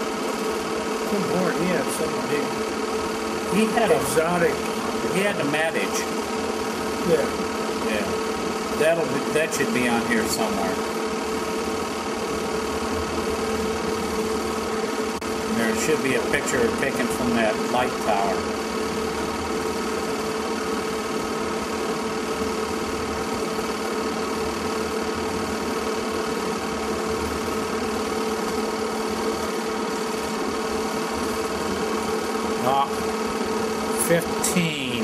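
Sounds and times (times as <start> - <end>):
film projector running: 0.0 - 35.0.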